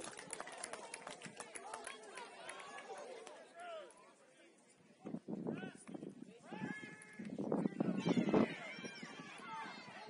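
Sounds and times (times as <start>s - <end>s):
voices shouting: 7.6s - 10.0s.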